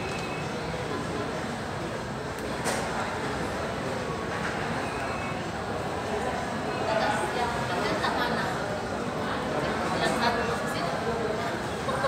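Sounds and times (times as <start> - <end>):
indoor hall background noise: 0.0 - 12.0.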